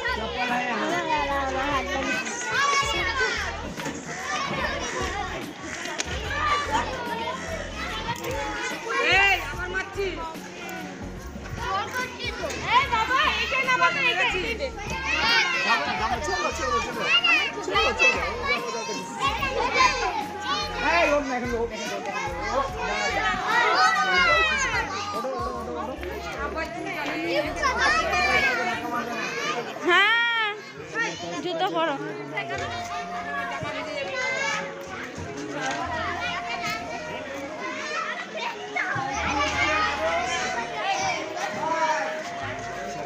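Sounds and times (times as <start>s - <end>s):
children playing and shouting: 0.0s - 43.0s.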